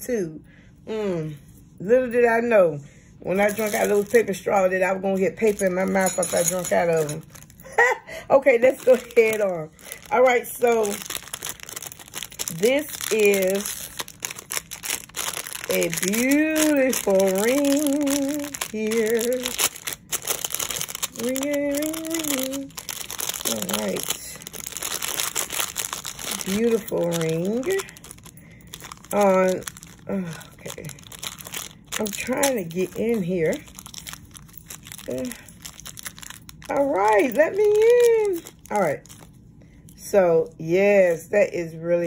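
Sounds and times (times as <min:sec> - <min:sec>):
plastic packaging crinkling: 0:03.3 - 0:40.0.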